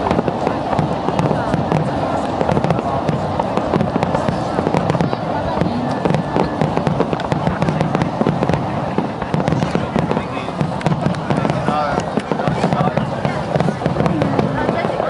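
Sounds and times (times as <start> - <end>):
fireworks crackling and banging: 0.0 - 15.0
people talking: 0.0 - 15.0.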